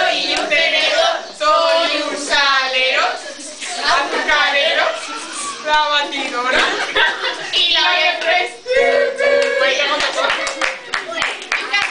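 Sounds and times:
voices calling out: 0.0 - 11.9
hand clapping: 9.4 - 11.9.

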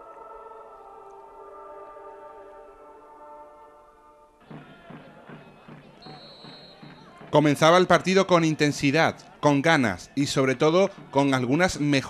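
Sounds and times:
murmur of crowd voices: 4.4 - 12.0
referee's whistle: 5.4 - 7.2.

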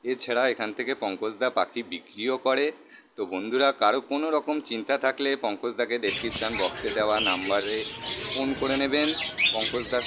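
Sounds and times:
budgerigars chattering: 6.1 - 10.0.

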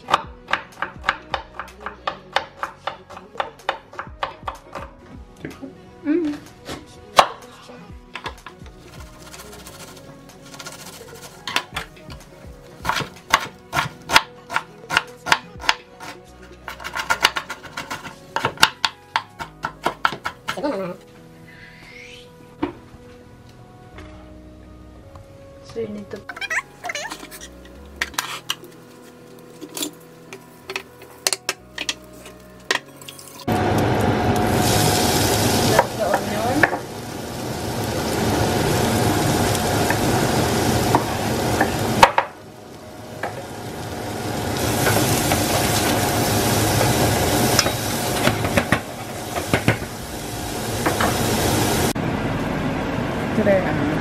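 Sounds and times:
onion sizzling in butter: 8.8 - 12.0, 26.5 - 52.0.

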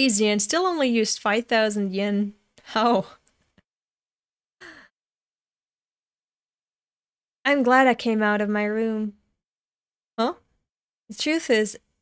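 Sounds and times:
woman sighing: 4.6 - 4.9.

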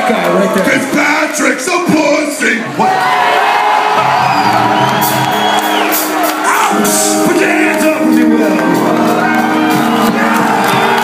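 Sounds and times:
crowd shouting: 2.7 - 7.8, 8.8 - 11.0
drums and crashing cymbals: 4.0 - 11.0
electric guitar notes: 4.4 - 11.0.

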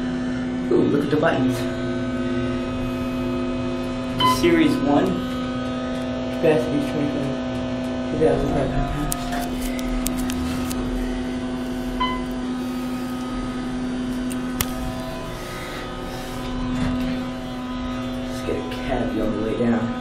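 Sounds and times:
elevator humming: 0.0 - 20.0
short beep: 4.2 - 4.5, 12.0 - 12.3.

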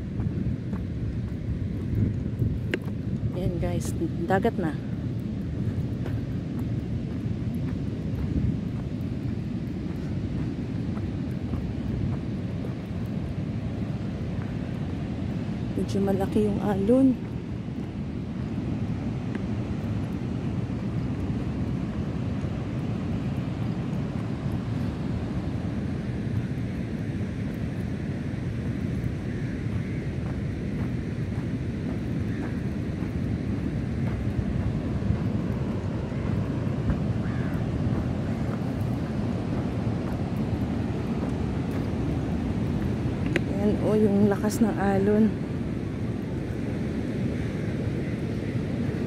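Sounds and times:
wind on microphone: 0.0 - 49.0.

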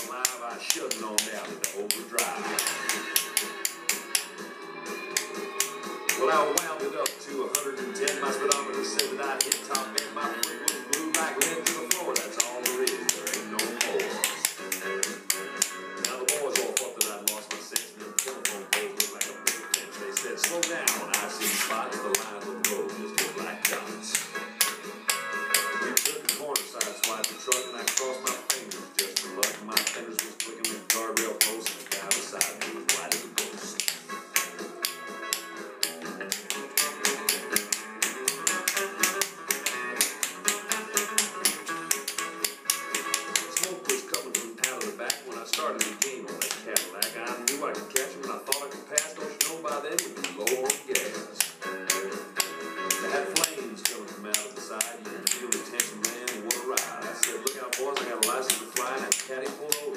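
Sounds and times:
tap shoes on hard floor: 0.0 - 4.4, 5.2 - 59.9
upbeat country-rock music: 0.0 - 59.9.

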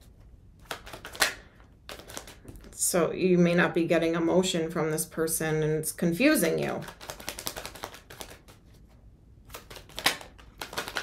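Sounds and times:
cards being shuffled: 0.1 - 2.8, 6.8 - 11.0.

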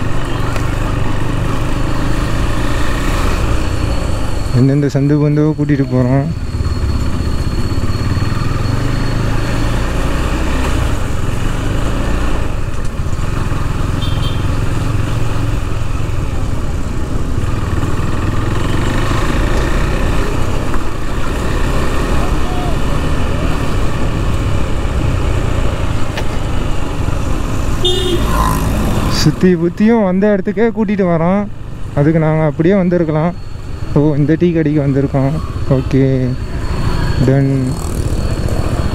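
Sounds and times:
road and wind noise: 0.0 - 38.9
motorcycle engine running: 12.6 - 29.3.

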